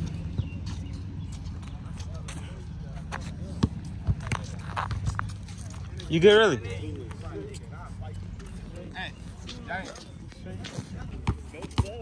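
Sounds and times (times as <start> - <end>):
basketball bouncing on asphalt: 0.0 - 2.4, 3.1 - 5.4, 10.5 - 12.0
faint distant voices: 0.0 - 12.0.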